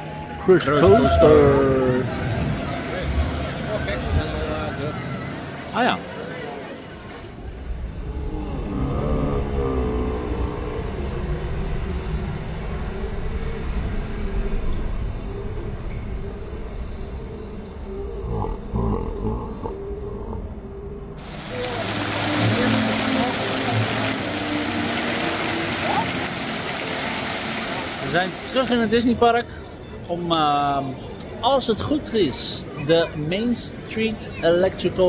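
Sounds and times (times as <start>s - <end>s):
fountain water splashing: 0.0s - 7.8s, 21.2s - 29.4s.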